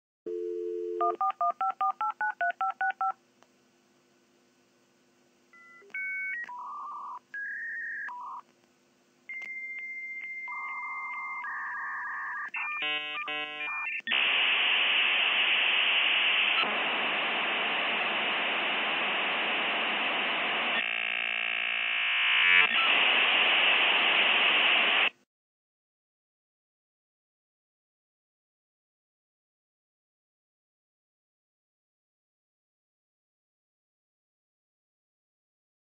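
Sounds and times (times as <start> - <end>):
dial tone: 0.3 - 1.6, 9.3 - 14.0
modem warbling chirps: 10.2 - 14.0
loud hissing modem static: 12.6 - 25.2.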